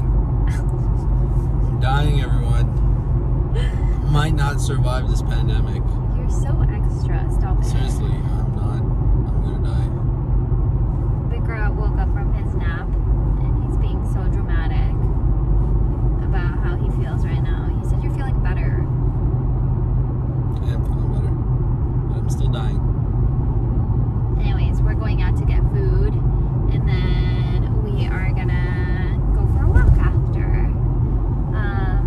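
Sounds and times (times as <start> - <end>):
car road and engine rumble: 0.0 - 32.0
woman's voice: 3.6 - 4.0, 6.1 - 8.0, 11.3 - 15.1, 16.2 - 18.9, 24.4 - 30.8, 31.6 - 32.0.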